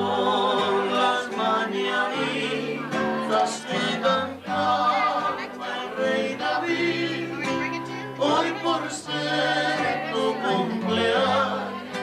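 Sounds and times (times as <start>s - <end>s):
acoustic guitar: 0.0s - 12.0s
group singing: 0.0s - 12.0s.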